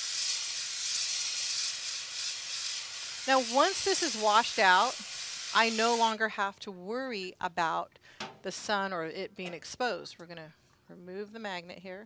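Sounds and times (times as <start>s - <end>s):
hose nozzle spraying water: 0.0s - 6.2s.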